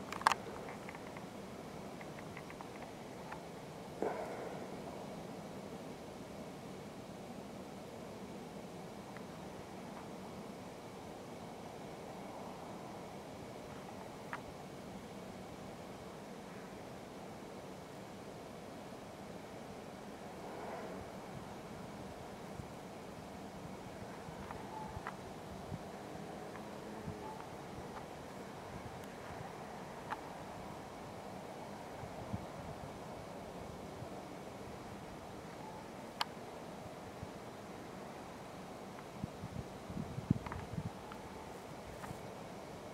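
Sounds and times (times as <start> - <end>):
outdoor background hum and hiss: 0.0 - 42.9.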